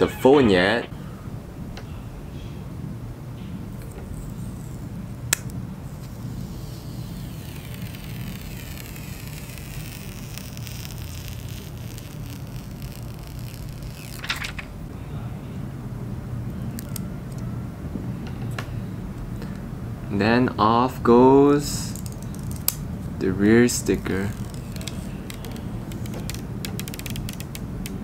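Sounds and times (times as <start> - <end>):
plastic film peeling: 5.9 - 14.7, 22.0 - 22.8, 23.8 - 28.0
plastic film click: 24.3 - 28.0.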